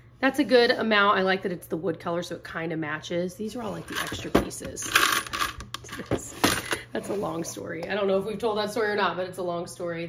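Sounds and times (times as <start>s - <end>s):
hardware pieces clattering in plastic bin: 3.8s - 6.9s.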